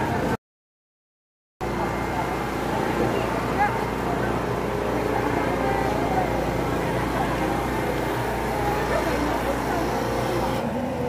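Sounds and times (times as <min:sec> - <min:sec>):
indistinct crowd voices: 0:01.6 - 0:11.0
low engine drone: 0:01.6 - 0:11.0.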